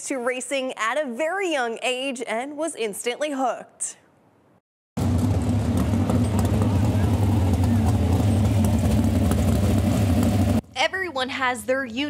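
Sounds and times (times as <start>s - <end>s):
race car engine running: 5.0s - 10.6s.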